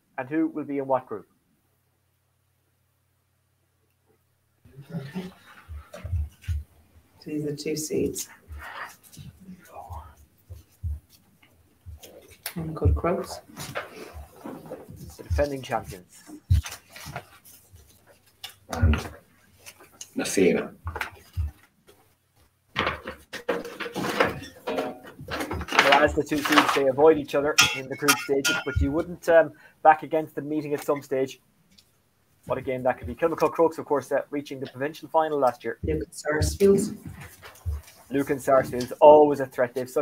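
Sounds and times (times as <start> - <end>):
soft deep thumps on microphone: 5.6 - 6.7, 12.8 - 13.5
breathing: 29.5 - 29.8.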